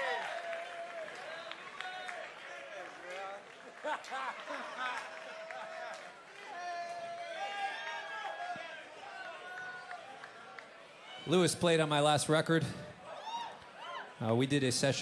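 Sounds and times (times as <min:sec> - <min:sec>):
crowd cheering: 0:00.0 - 0:15.0.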